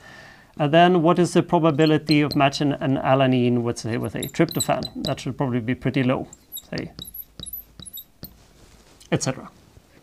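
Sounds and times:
marker squeaking on glass: 1.7s - 2.7s, 3.8s - 5.4s, 6.2s - 8.5s.

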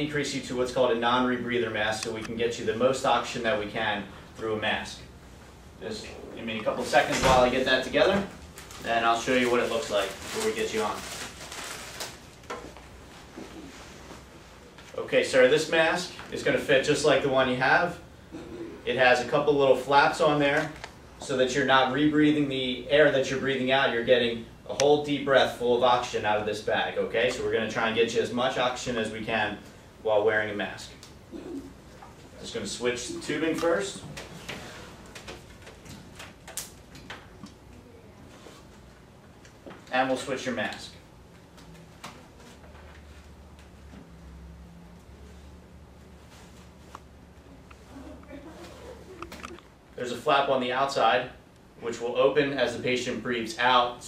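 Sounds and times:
plastic mask and tubing rustling: 6.8s - 15.0s.

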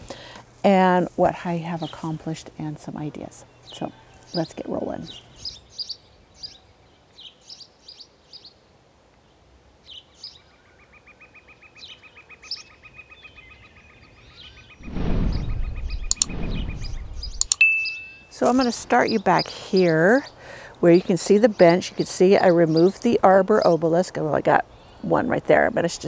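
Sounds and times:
garden birds chirping: 0.0s - 26.0s
loud rush of noise: 14.8s - 17.6s
bird trill: 15.4s - 19.5s
sharp clicks: 15.8s - 17.6s.

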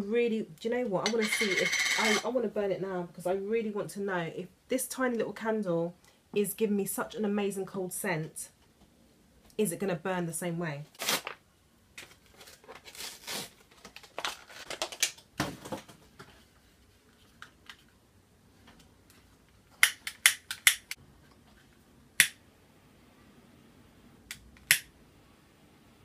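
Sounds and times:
handling and rustling: 12.0s - 18.0s.

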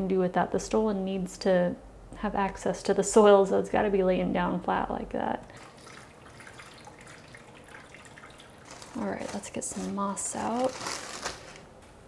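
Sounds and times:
small crackles in potting mix: 8.2s - 11.7s
faint rustling: 8.6s - 12.0s.

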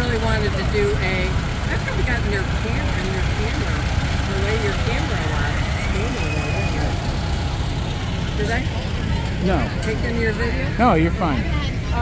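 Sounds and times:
tractor engine rumbling: 0.0s - 12.0s.

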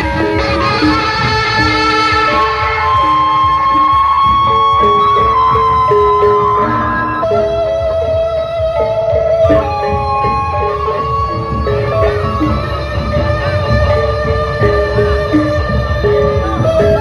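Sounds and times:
bamboo flute melody: 0.0s - 17.0s
large drums: 0.0s - 17.0s
lower melody lines: 0.0s - 17.0s.

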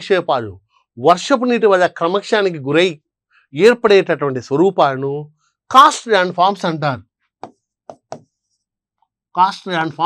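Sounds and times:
pen tapping on writing board: 7.4s - 8.4s.

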